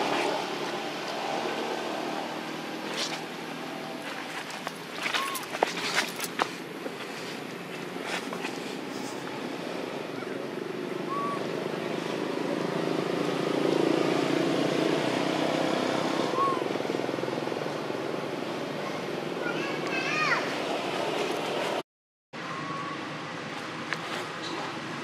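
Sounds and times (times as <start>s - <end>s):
distant vehicle engine hum: 0.0s - 21.8s
faint short chirps: 5.1s - 6.2s.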